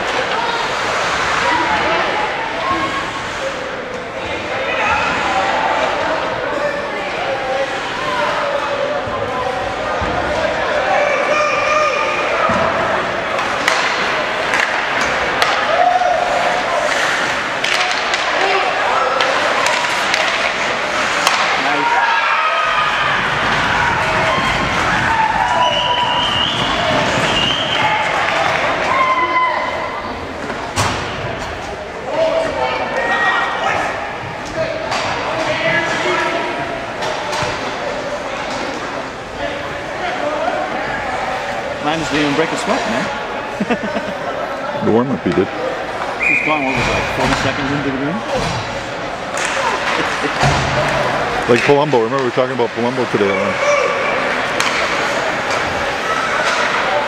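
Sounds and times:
voices: 0.0s - 57.0s
puck and players hitting boards: 12.4s - 29.0s, 30.4s - 31.7s, 46.0s - 57.0s.

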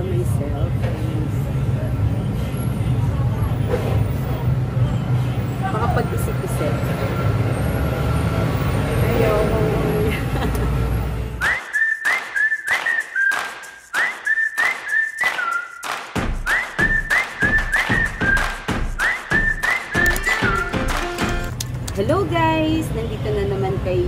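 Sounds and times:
whistled jingle tune: 11.4s - 21.5s
percussive beat: 11.4s - 21.6s
bass line: 16.2s - 21.5s.

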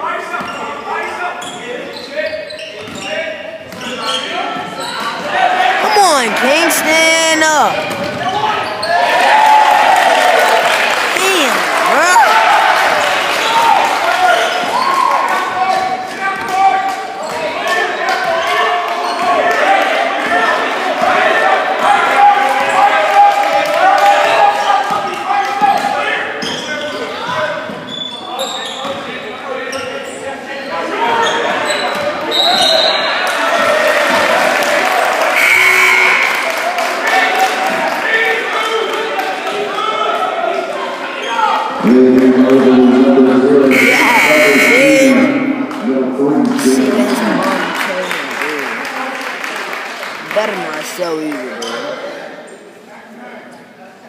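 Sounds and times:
sneakers squeaking: 0.4s - 0.8s, 1.4s - 5.2s, 7.8s - 9.0s, 27.7s - 29.0s
spectators talking and shouting: 4.7s - 16.6s, 30.9s - 38.9s, 39.6s - 48.9s.

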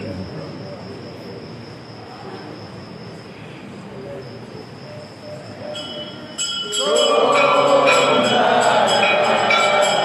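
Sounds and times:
low murmur of people: 0.0s - 10.0s
metal bells ringing rapidly: 5.5s - 10.0s.

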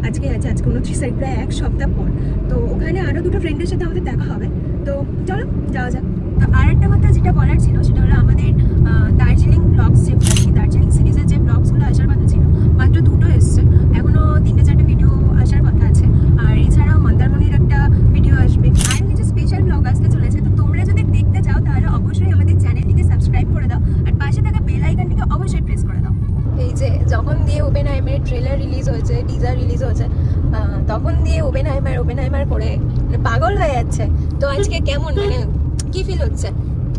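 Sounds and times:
car cabin road and engine rumble: 0.0s - 36.9s
person talking: 34.5s - 35.5s.

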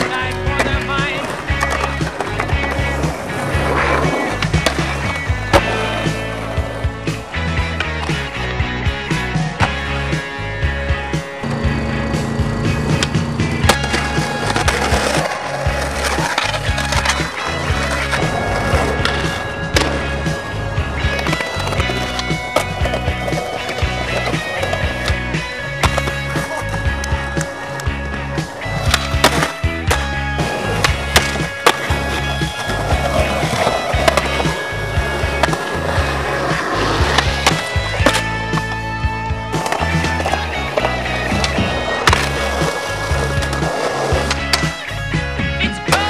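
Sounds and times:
skateboard rolling and clacking: 0.0s - 8.5s, 11.4s - 45.3s
skateboard impacts: 0.0s - 10.4s, 11.2s - 46.0s
music with heavy beat: 0.0s - 46.0s.

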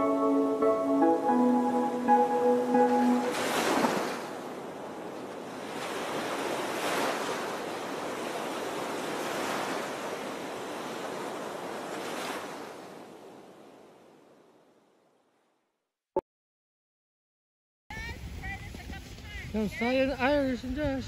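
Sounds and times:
wind on microphone: 17.9s - 21.0s.

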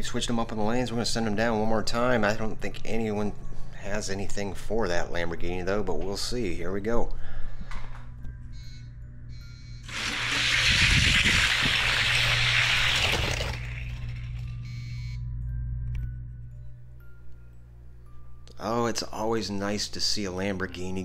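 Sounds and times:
faint background music: 0.0s - 9.8s, 14.4s - 21.0s.

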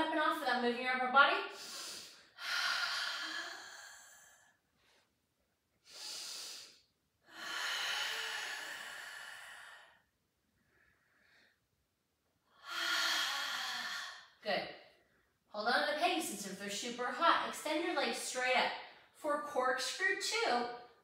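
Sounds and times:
woman breathing hard: 1.5s - 5.1s, 5.8s - 11.7s, 12.5s - 14.4s.

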